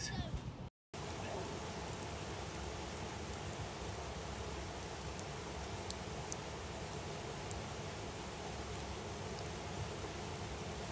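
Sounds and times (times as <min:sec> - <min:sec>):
logs crackling and popping: 0:01.0 - 0:10.9
wood fire hissing: 0:01.0 - 0:10.9.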